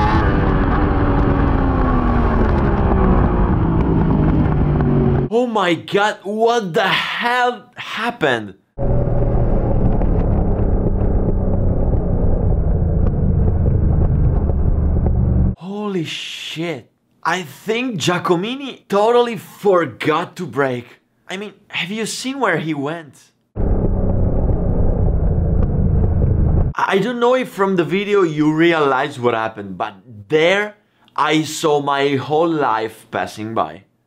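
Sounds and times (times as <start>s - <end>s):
motorcycle engine at racing speed: 0.0s - 5.3s, 8.8s - 15.6s
motorcycle engine running hard: 0.0s - 5.3s
wind noise: 0.0s - 5.3s, 8.8s - 15.6s.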